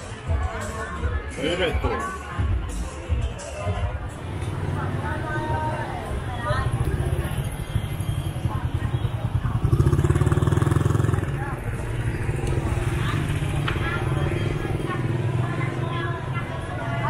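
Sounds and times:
people talking in street: 0:00.0 - 0:17.0
motor scooter engine running: 0:04.6 - 0:17.0.

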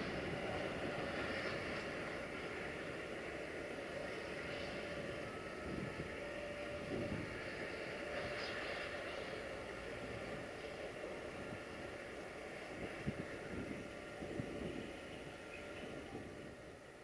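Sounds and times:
light knocks of train wagons: 0:00.0 - 0:16.5
freight train rumbling on track: 0:00.0 - 0:17.0.

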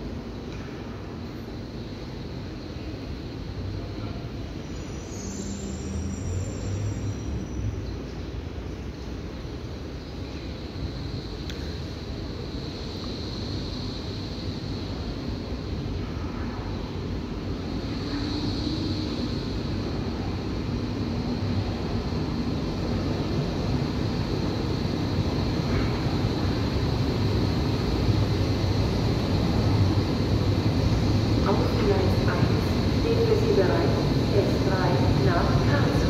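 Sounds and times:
electric train pulling in: 0:00.0 - 0:36.0.

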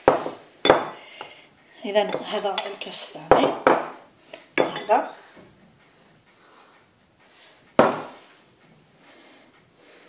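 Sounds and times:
kitchenware knocking against bowl: 0:04.6 - 0:05.0.

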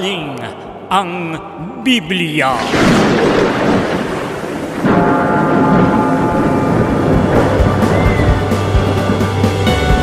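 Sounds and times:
loud thunder rumble: 0:02.6 - 0:09.7
background music with held tones: 0:07.1 - 0:10.0.

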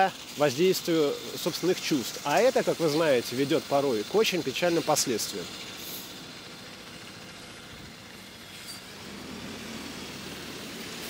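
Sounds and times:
bus engine running: 0:00.0 - 0:11.0
street traffic: 0:00.0 - 0:11.0.

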